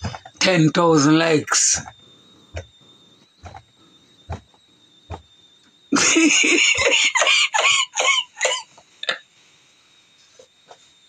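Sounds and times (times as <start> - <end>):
man laughing: 6.0 - 9.2.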